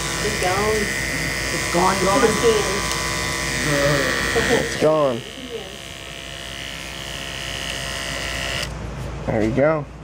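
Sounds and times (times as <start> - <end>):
electric hair clipper buzzing: 0.0 - 8.8.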